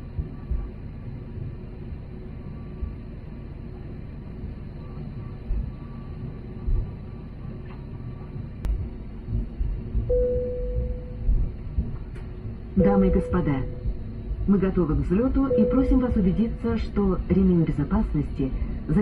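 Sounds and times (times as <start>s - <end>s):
low engine rumble: 0.0s - 19.0s
brief steady tone: 10.1s - 11.4s, 12.8s - 14.0s, 15.4s - 16.7s.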